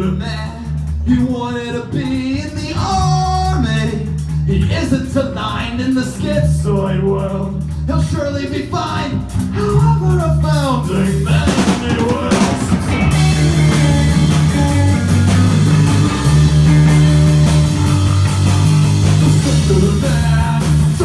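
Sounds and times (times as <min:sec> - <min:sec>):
drum kit and cymbals: 0:00.0 - 0:21.0
electric bass: 0:00.0 - 0:21.0
electric guitar: 0:11.3 - 0:21.0.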